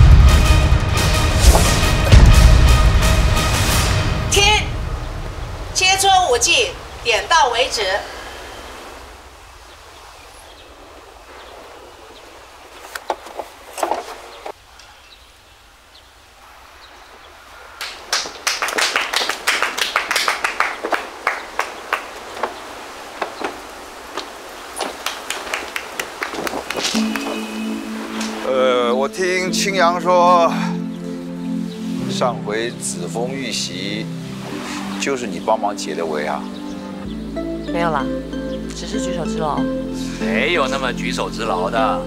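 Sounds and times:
background music: 0:00.0 - 0:06.5, 0:26.8 - 0:42.0.

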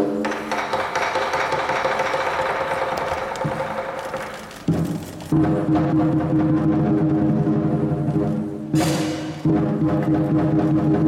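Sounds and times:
fast percussion roll: 0:00.2 - 0:07.2.

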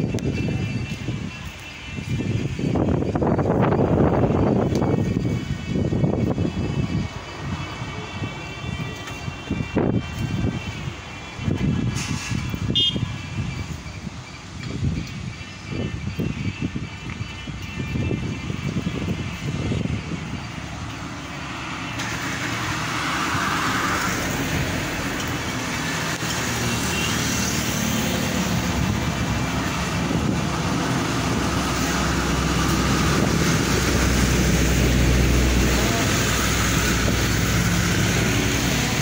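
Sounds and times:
lorry engine rumbling: 0:00.0 - 0:39.0
road traffic passing: 0:00.0 - 0:39.0.

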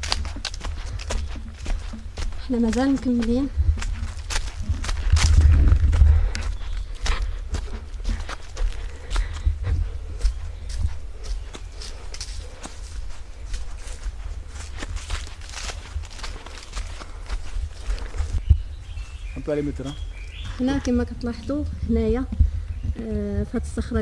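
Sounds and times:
footsteps crunching on dry leaves: 0:00.0 - 0:20.8
low rumble on microphone: 0:00.0 - 0:24.0.

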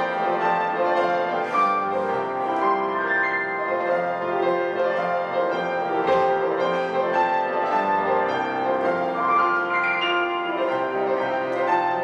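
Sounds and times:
grand piano solo: 0:00.0 - 0:12.0.

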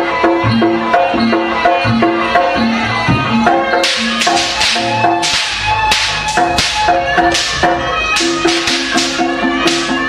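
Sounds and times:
gamelan metallic melody: 0:00.0 - 0:10.0
sharp bright cracks: 0:03.8 - 0:10.0.

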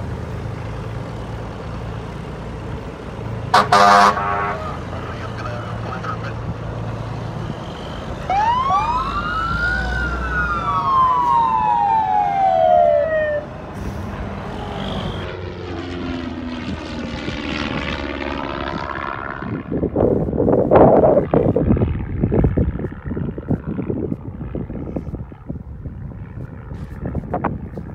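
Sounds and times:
airplane passing: 0:00.0 - 0:27.9
siren wail: 0:07.2 - 0:21.8
wind gusts on microphone: 0:16.6 - 0:27.9.

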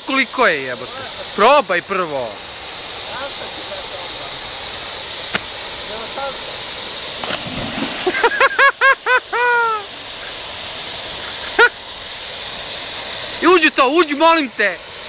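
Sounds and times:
fountain jets hissing: 0:00.0 - 0:15.0
splash into water: 0:07.2 - 0:08.3
person crying out: 0:08.2 - 0:10.0.

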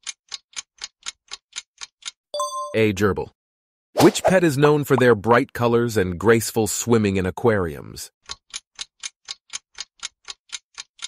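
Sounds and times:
clock ticking: 0:00.0 - 0:02.2, 0:08.2 - 0:11.0.

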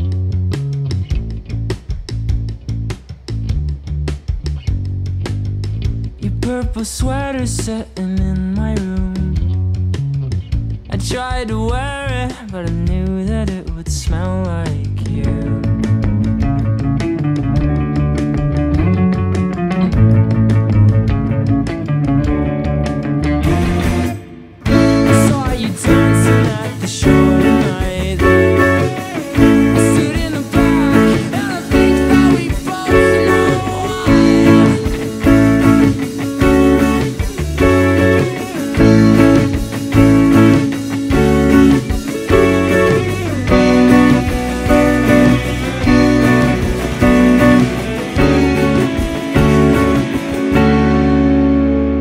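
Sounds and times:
bass: 0:00.0 - 0:52.0
drums: 0:00.0 - 0:52.0
electric guitar playing chords: 0:15.0 - 0:52.0.

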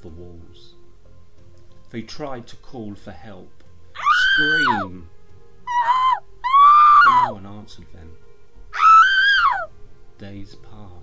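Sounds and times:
faint music drone: 0:00.0 - 0:11.0
high-pitched screaming cries for help: 0:04.0 - 0:04.9, 0:05.7 - 0:07.4, 0:08.8 - 0:09.7.

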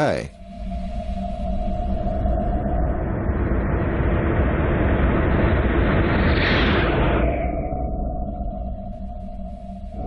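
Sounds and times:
low rumbling drone: 0:00.3 - 0:10.0.

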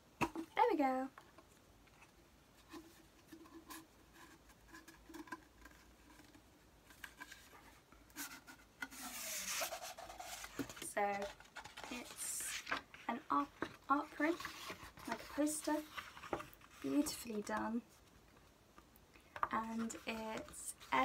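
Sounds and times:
paper and card rustling: 0:02.0 - 0:18.4, 0:19.4 - 0:21.0.

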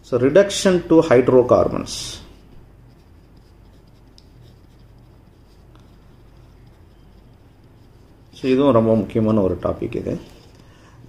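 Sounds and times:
pen scratching on paper: 0:02.6 - 0:09.2.

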